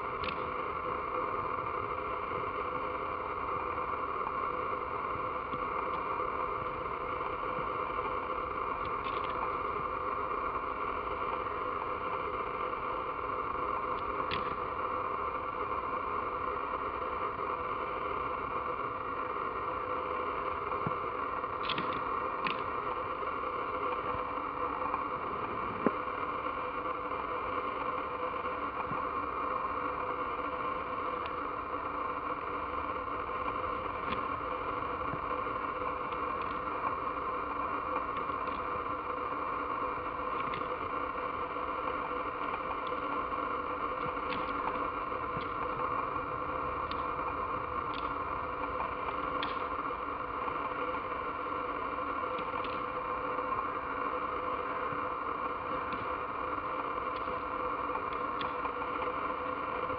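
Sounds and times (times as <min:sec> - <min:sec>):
steady drone: 0:00.0 - 0:59.9.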